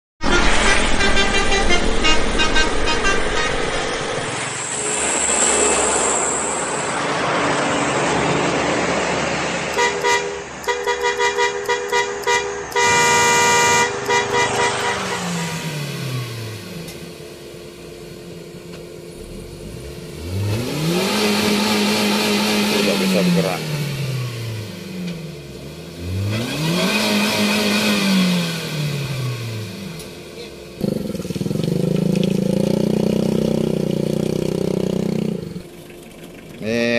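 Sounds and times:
truck horns tooting: 0:00.2 - 0:04.0, 0:09.7 - 0:16.7
engine revving: 0:00.2 - 0:35.7
heavy truck engines passing: 0:00.2 - 0:36.9.

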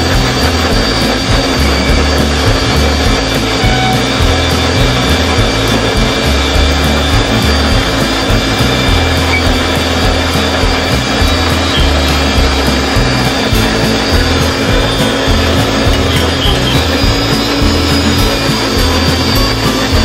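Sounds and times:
background music with bass line: 0:00.0 - 0:20.0
electric mixer grinder running: 0:00.0 - 0:20.0.

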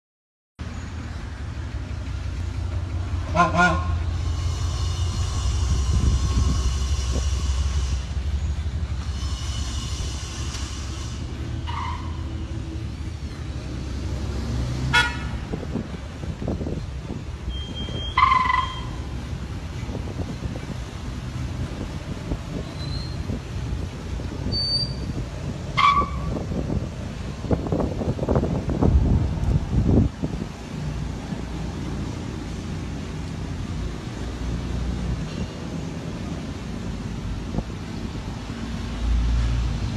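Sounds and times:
vehicles driving past: 0:00.6 - 0:39.9
long high horn: 0:03.2 - 0:08.4, 0:09.0 - 0:12.8, 0:14.8 - 0:15.6, 0:17.5 - 0:19.2, 0:24.5 - 0:26.5.

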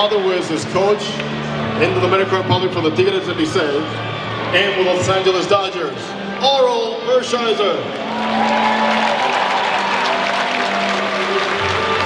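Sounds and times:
music over public address: 0:00.0 - 0:12.0
crowd applause: 0:07.9 - 0:12.0.

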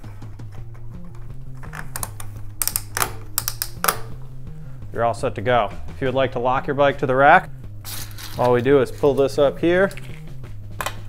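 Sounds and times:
background music: 0:00.0 - 0:11.0
ratchet strap clicking: 0:01.7 - 0:04.2.

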